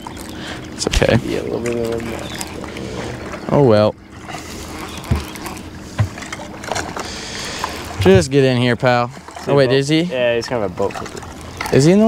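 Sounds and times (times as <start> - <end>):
open water noise: 0.0 - 12.0.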